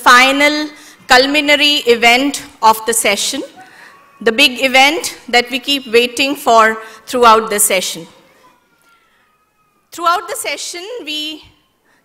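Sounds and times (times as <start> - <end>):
woman speaking into microphone: 0.0 - 3.6, 4.2 - 8.1, 10.0 - 11.5.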